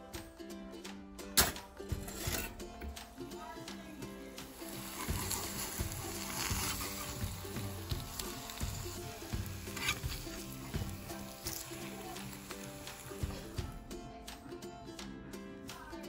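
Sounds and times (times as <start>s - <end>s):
soft background music: 0.0s - 16.0s
spatula scraping and knocking pan: 1.4s - 3.0s, 4.9s - 11.0s
eggs sizzling in a pan: 4.1s - 13.8s.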